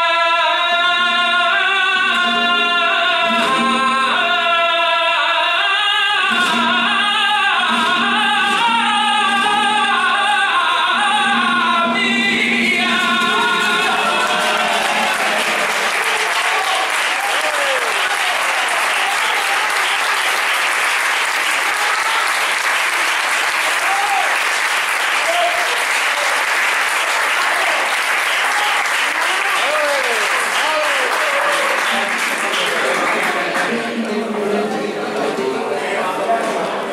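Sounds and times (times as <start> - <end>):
man singing flamenco: 0.0 - 20.4, 29.2 - 36.9
flamenco guitar: 0.0 - 25.8, 28.5 - 36.9
audience applause: 13.0 - 34.0
crowd shouts: 13.5 - 20.5, 23.6 - 24.5, 27.1 - 32.6.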